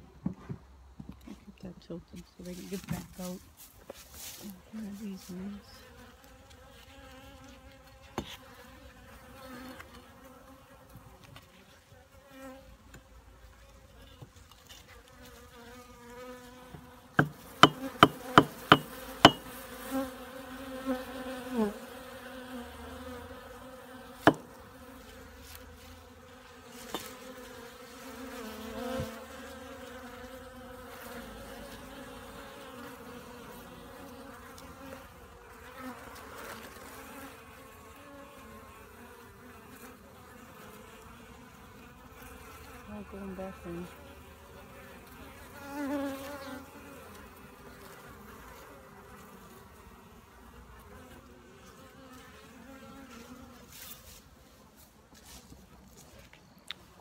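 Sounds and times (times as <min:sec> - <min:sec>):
bees buzzing: 0:04.2 - 0:12.7, 0:14.9 - 0:53.7.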